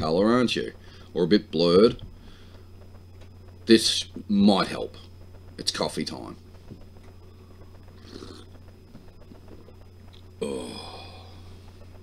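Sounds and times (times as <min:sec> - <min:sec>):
faint low hum: 0:00.0 - 0:12.0
slurping sip of coffee: 0:08.0 - 0:08.5.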